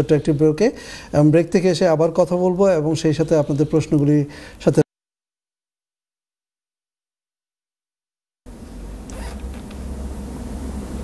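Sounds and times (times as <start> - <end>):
low steady hum: 8.5 - 11.0.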